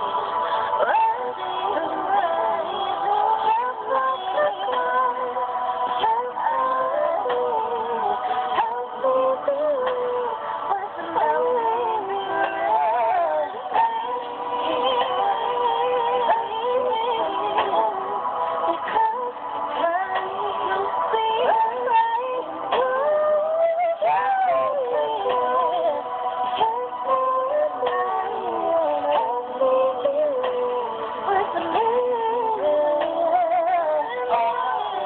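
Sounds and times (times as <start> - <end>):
woman singing over backing track: 0.0 - 35.0.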